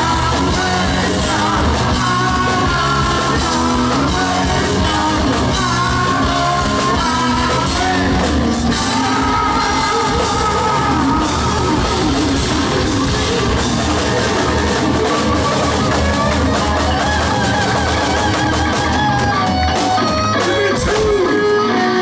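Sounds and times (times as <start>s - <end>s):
bass guitar: 0.0s - 22.0s
distorted electric guitars: 0.0s - 22.0s
drum kit: 0.0s - 22.0s
person singing: 0.0s - 22.0s.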